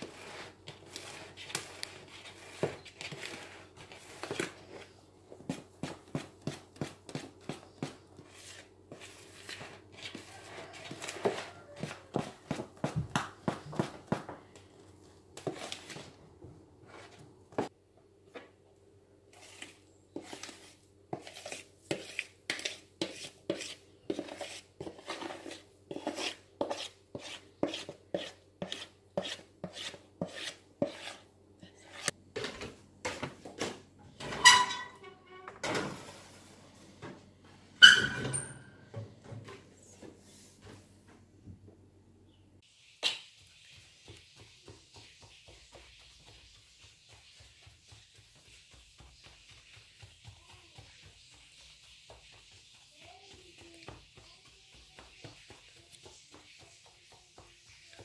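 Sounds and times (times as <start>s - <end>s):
spoon stirring batter in glass bowl: 19.3s - 32.2s.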